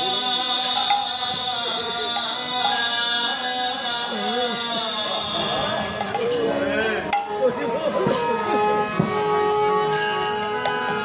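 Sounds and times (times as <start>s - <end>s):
person singing: 0.0s - 7.6s
held instrumental tones: 0.0s - 11.0s.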